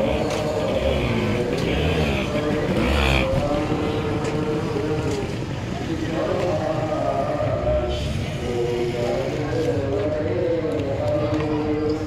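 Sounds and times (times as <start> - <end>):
small motorcycles passing: 0.0 - 7.2
people's voices: 0.0 - 12.0.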